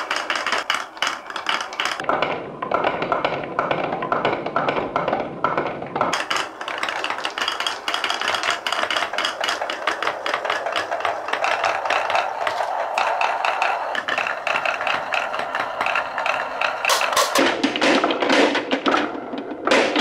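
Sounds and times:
marbles rattling down wooden track: 0.0 - 20.0.

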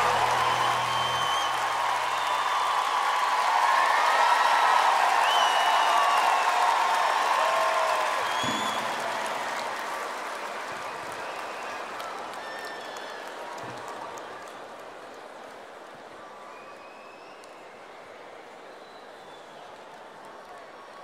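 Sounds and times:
music: 0.0 - 2.1
whistles and shouts: 0.0 - 2.9, 5.2 - 6.5, 8.0 - 9.6, 10.9 - 13.4, 16.4 - 18.2
crowd applauding and cheering: 0.0 - 21.0.

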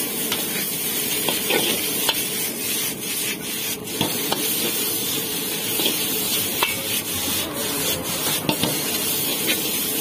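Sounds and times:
frying sizzle: 0.0 - 10.0
metal ladle scraping wok: 0.0 - 10.0.

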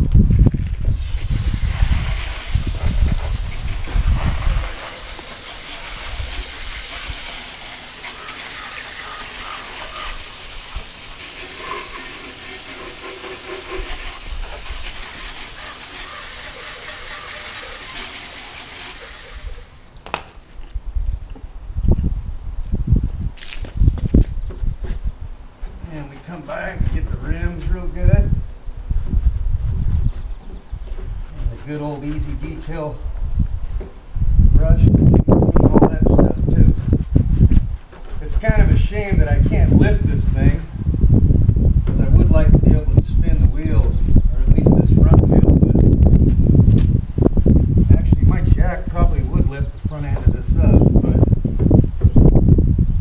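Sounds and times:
hose nozzle spraying water: 0.9 - 19.9.

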